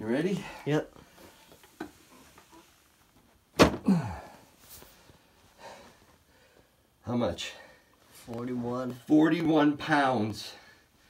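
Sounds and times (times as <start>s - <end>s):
faint handling sounds: 7.8s - 10.6s.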